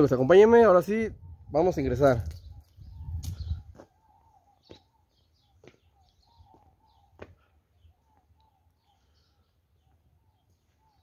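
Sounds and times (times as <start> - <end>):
small birds chirping: 0.0 - 11.0
footsteps on tiled floor: 5.5 - 7.4.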